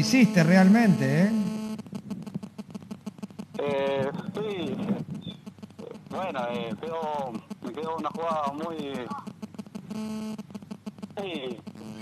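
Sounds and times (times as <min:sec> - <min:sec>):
man's voice over phone line: 0:00.0 - 0:01.5, 0:03.6 - 0:05.0, 0:05.8 - 0:09.2, 0:11.2 - 0:12.0.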